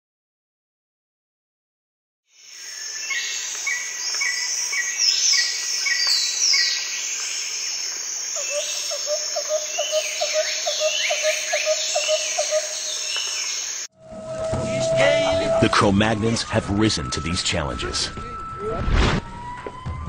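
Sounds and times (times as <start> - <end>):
high insect-like hiss: 2.4 - 13.9
birds chirping and whistling: 2.6 - 18.6
low chirps: 8.3 - 18.8.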